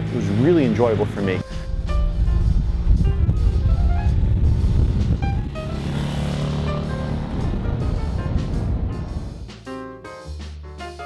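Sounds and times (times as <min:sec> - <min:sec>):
motorcycle engine passing by: 0:00.0 - 0:09.4
background music: 0:00.0 - 0:11.0.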